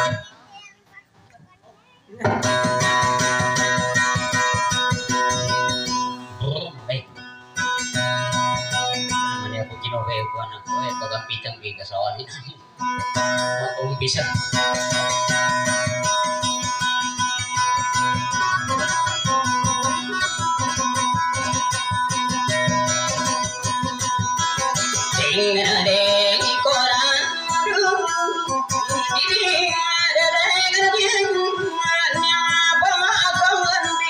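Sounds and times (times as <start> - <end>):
acoustic guitar strumming: 0.0 - 1.2, 1.9 - 34.0
person speaking: 9.3 - 12.7.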